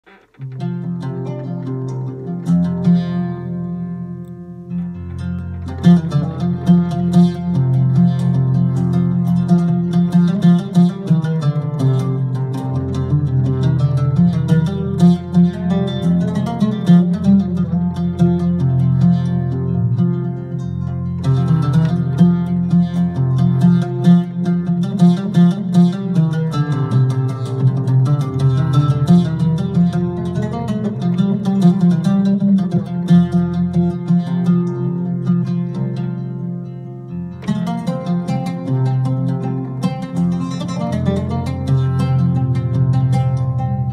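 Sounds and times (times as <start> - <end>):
plucked oud melody on keyboard: 0.0 - 43.9.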